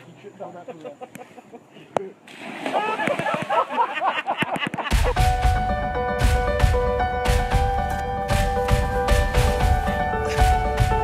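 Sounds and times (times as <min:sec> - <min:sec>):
water splashing in a river: 0:02.3 - 0:04.0.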